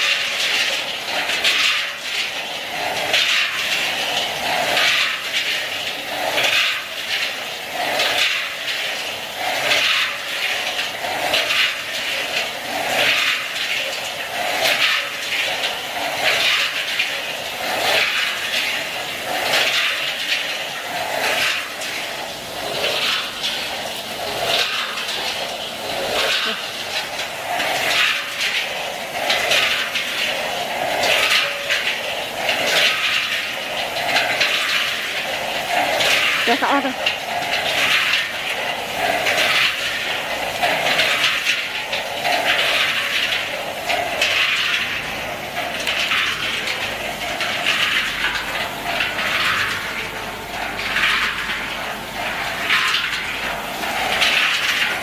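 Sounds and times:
peanuts tumbling in a mixing drum: 0.0 - 55.0.

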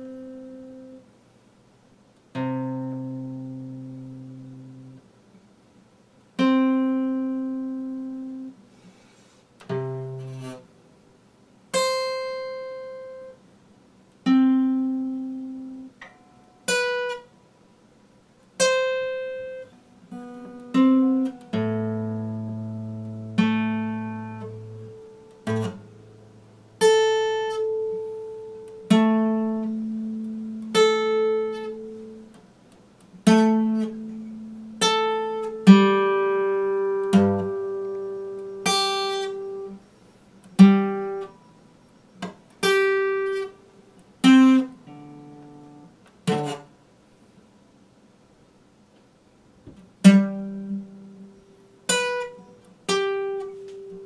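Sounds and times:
fingerpicked acoustic guitar: 0.0 - 1.2, 2.2 - 5.5, 6.2 - 17.6, 18.4 - 47.2, 48.8 - 54.0.

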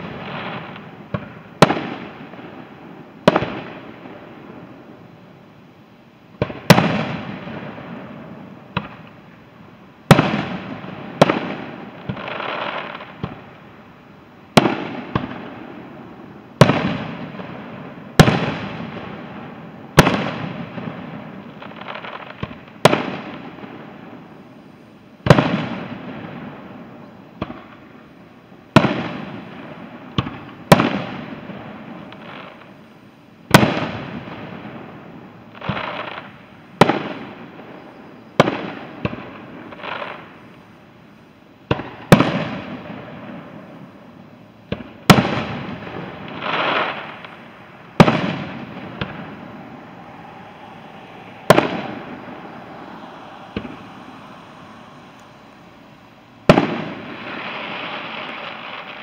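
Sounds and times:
fireworks bursting with echo: 0.0 - 5.2, 6.3 - 32.9, 33.5 - 59.0
softer drawn-out fireworks bursts: 0.0 - 59.0.

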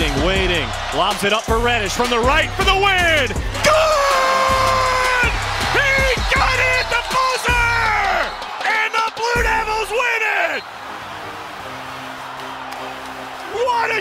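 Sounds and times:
music with heavy bass: 0.0 - 8.3
people shouting and whooping: 2.7 - 10.7.

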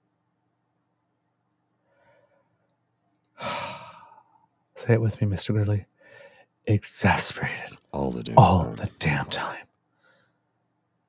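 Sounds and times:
man sighing heavily: 3.4 - 4.4.

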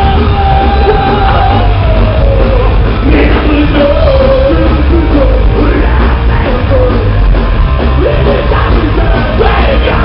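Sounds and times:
person singing and yelling: 0.0 - 7.1, 7.9 - 10.0
live rock band playing: 0.0 - 10.0.

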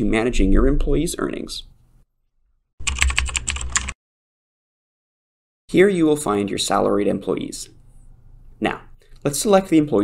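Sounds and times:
computer keyboard typing: 2.8 - 4.0.

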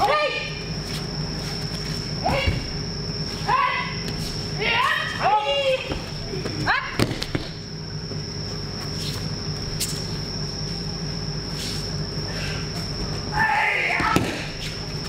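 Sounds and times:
steady hall hum: 0.0 - 15.0
person shouting: 3.4 - 4.0, 4.6 - 5.9, 13.3 - 14.4
body slapping the mat: 5.9 - 7.6, 14.0 - 14.8.

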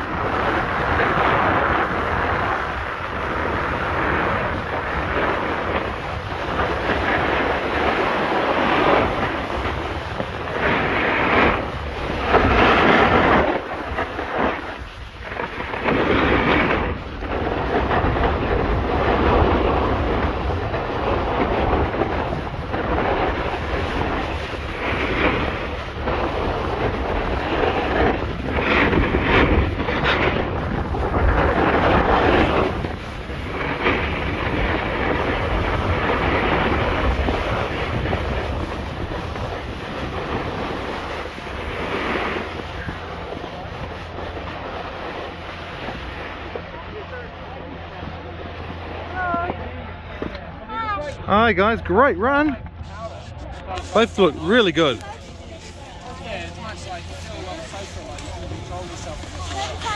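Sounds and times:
skis scraping over snow: 0.0 - 59.9
wind rushing over microphone: 0.0 - 59.9.

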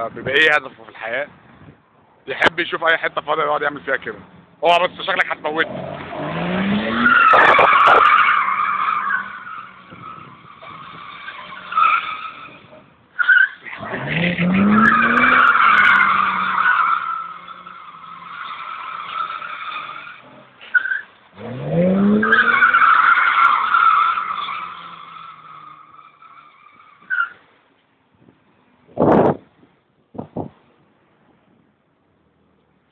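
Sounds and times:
car engine revving hard: 5.6 - 8.0, 13.8 - 16.5, 21.4 - 22.7
tyres squealing: 6.7 - 27.4
thump: 29.0 - 29.5.

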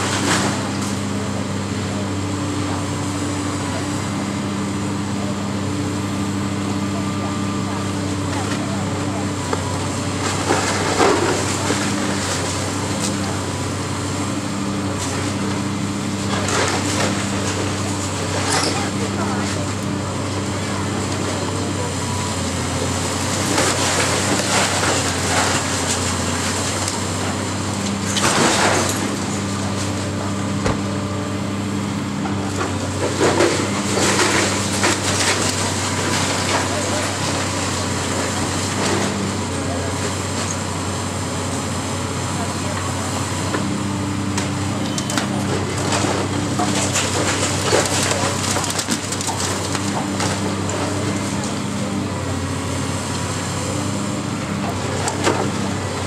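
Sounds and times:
excavator engine hum: 0.0 - 56.0
brick masonry crashing: 23.1 - 31.0, 45.0 - 52.2.

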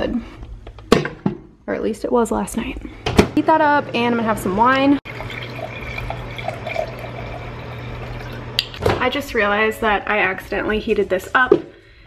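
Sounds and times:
microwave oven humming: 3.6 - 9.1.

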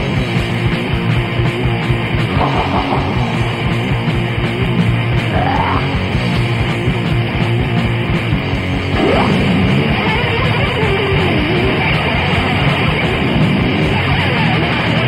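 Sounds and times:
distorted electric guitars: 0.0 - 15.0
thrash metal instrumental: 0.0 - 15.0.

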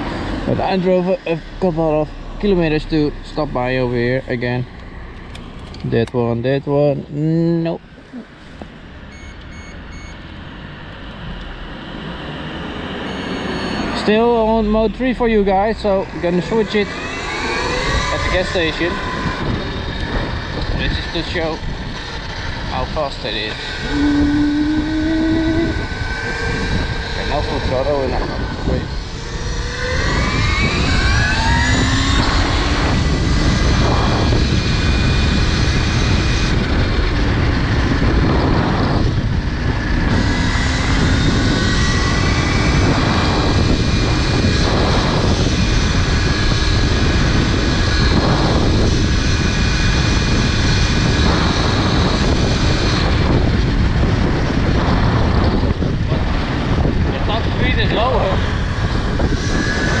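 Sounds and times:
wind and road noise: 0.0 - 60.0
electric motor whining: 11.3 - 38.3.

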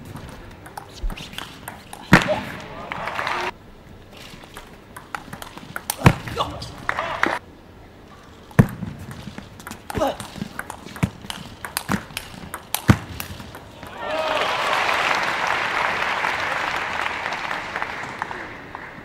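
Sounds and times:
shoes squeaking on floor: 0.0 - 2.2
ping pong ball clicks: 0.2 - 2.1, 4.6 - 6.1, 9.6 - 13.8
crowd applause: 2.6 - 3.5, 6.8 - 7.4, 13.8 - 19.0.

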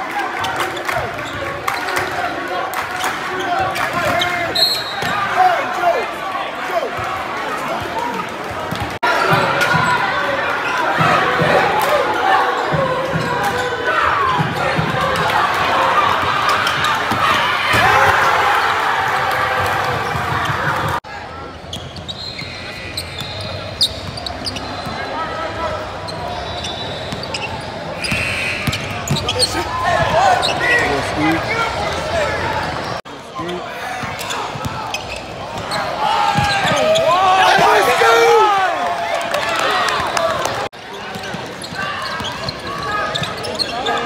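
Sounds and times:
crowd voices: 0.0 - 44.0
shoe squeaks: 21.6 - 30.9, 32.8 - 37.1, 41.2 - 44.0
basketball bouncing on court: 28.6 - 29.4, 35.6 - 36.8.

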